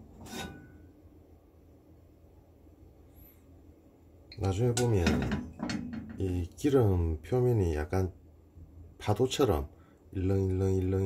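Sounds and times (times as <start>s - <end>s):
frying pan scraping on metal grate: 0.1s - 0.8s.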